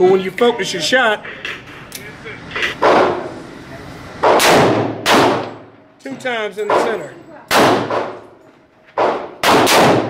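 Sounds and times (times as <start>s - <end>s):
handgun shots echoing: 4.2s - 5.6s, 9.0s - 10.0s.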